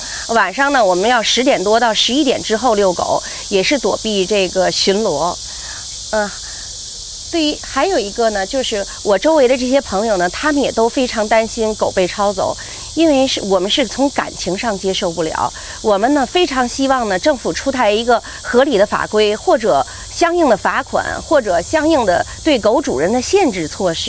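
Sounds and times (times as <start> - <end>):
woman speaking: 0.0 - 6.6, 7.4 - 24.0
steady high hiss: 0.0 - 24.0.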